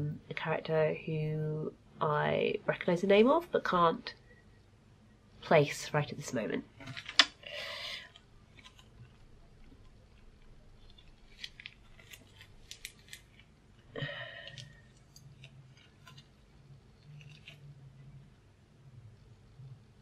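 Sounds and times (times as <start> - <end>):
packaging clicks and rustles: 8.1 - 13.6.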